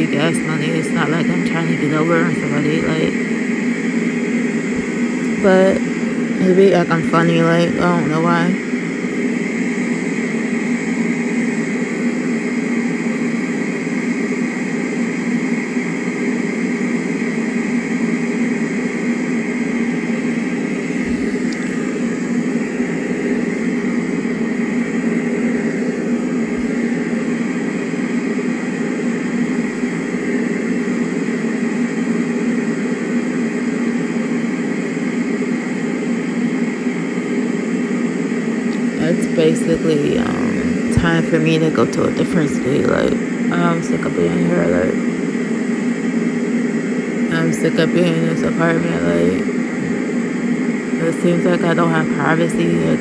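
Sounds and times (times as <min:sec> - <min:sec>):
white noise machine whoosh: 0:00.0 - 0:53.0.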